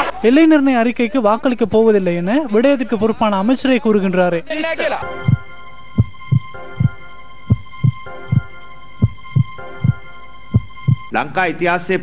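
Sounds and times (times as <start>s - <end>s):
held synth tone: 5.0s - 11.1s
low heartbeat-like thuds: 5.1s - 11.1s.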